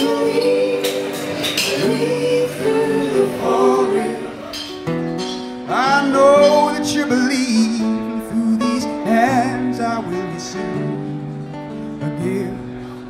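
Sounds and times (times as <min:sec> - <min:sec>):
person singing: 0:00.0 - 0:04.7, 0:05.6 - 0:11.1
strummed acoustic guitar: 0:00.0 - 0:13.0.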